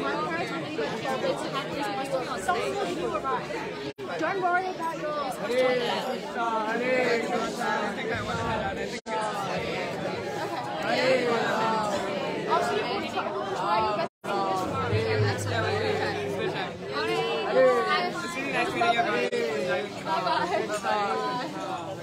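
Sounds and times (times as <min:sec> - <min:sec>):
overlapping chatter: 0:00.0 - 0:22.0.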